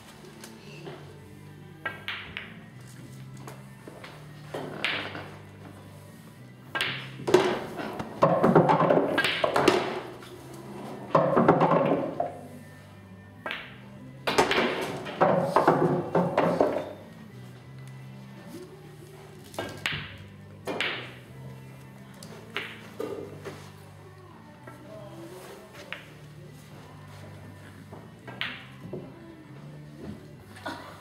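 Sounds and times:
background music with bass: 0.0s - 31.0s
pool balls clicking: 1.8s - 5.7s, 6.6s - 12.6s, 13.4s - 18.0s, 19.4s - 24.0s, 24.6s - 29.2s
pool balls rattling: 6.8s - 12.6s, 13.6s - 17.1s.

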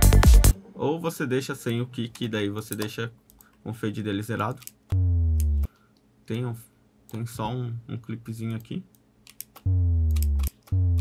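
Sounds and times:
synth sub-bass boom sliding down: 5.0s - 5.7s, 9.7s - 11.0s
soft mouse clicks: 8.4s - 10.7s.

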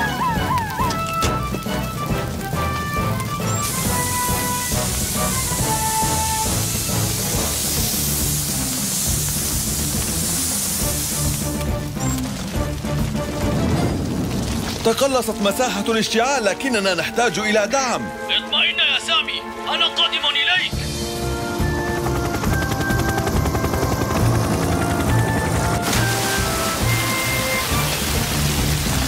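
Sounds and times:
background music: 0.0s - 29.0s
water jet spraying hiss: 1.4s - 12.4s, 25.8s - 29.0s.

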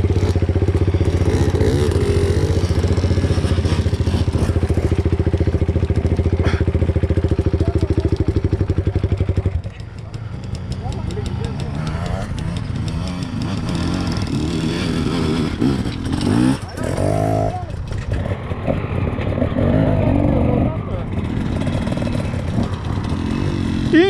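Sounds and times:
dirt bikes idling: 0.0s - 24.0s
indistinct voices: 14.9s - 24.0s.

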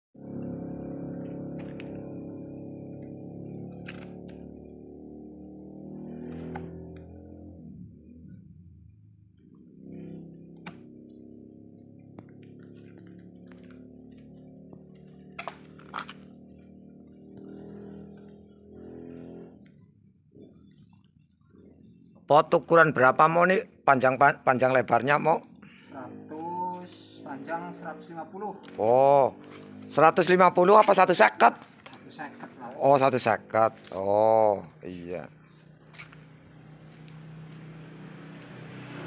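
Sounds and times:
night insects chirping: 0.2s - 39.0s.

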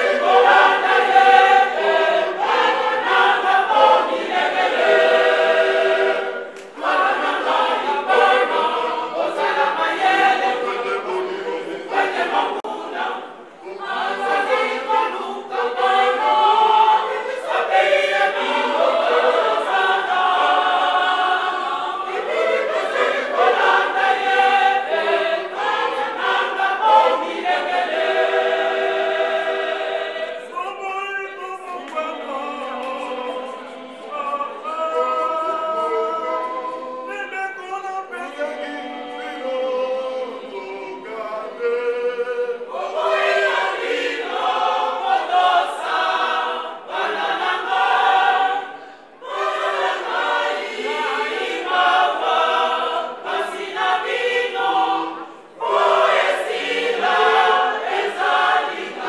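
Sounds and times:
women's choir singing a hymn: 0.0s - 59.0s.

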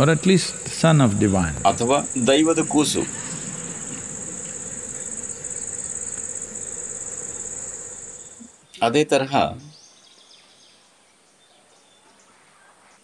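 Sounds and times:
crickets trilling: 0.0s - 8.5s.

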